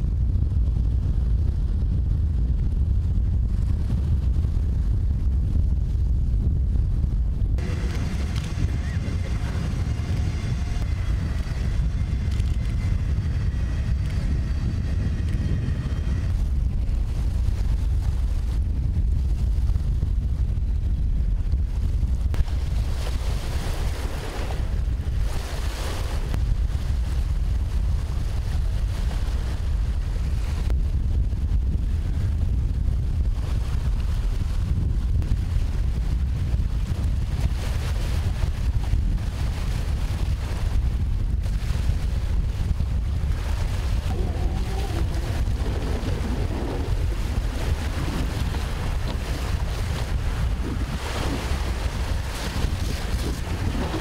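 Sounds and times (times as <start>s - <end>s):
wind buffeting microphone: 0.0s - 54.0s
lake water washing in shallows: 7.6s - 54.0s.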